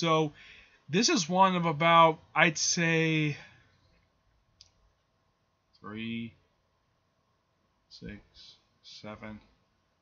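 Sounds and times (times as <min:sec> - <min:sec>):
man speaking: 0:00.0 - 0:03.5, 0:05.8 - 0:06.4, 0:07.9 - 0:09.5.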